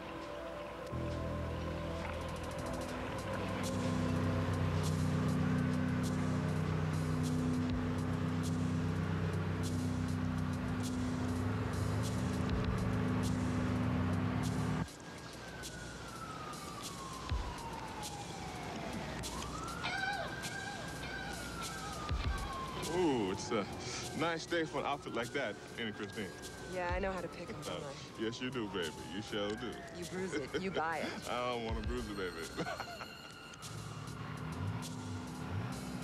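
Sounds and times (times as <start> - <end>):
low steady drone: 0.0 - 14.9
siren wailing: 0.0 - 36.0.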